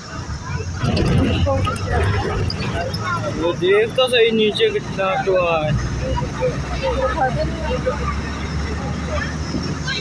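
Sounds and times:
vehicle engine and tyres rumbling: 0.0 - 10.0.

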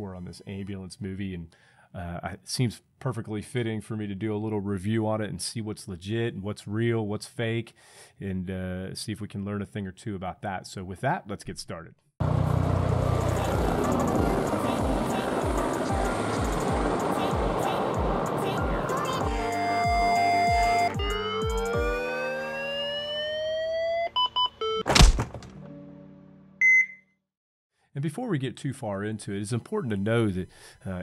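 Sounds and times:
helicopter rotor thumping: 12.2 - 18.4
engine noise: 12.2 - 19.2
musical tones with rising sweeps: 12.3 - 24.8
short high beep: 26.6 - 27.2.

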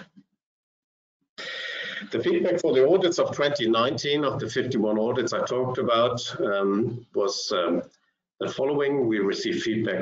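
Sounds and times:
breathy intake of breath: 1.4 - 2.2
man speaking: 1.8 - 10.0.

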